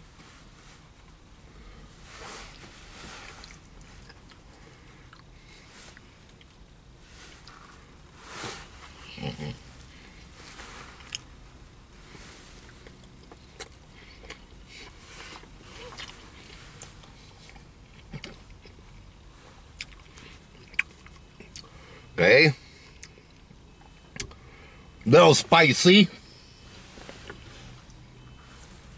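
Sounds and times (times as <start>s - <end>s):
person chewing a sandwich: 2.4s - 6.7s, 9.0s - 11.4s, 12.6s - 21.8s, 22.8s - 24.4s.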